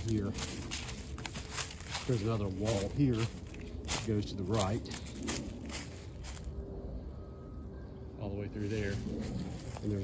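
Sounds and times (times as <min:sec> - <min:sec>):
footsteps crunching dry leaves: 0:00.0 - 0:06.7, 0:08.6 - 0:10.0.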